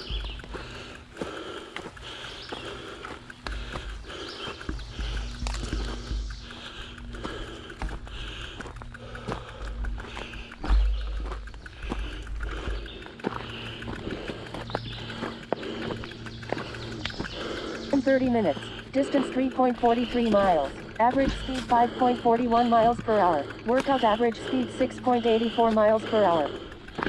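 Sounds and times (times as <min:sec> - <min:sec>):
bike rattling over rough ground: 0:00.0 - 0:27.0.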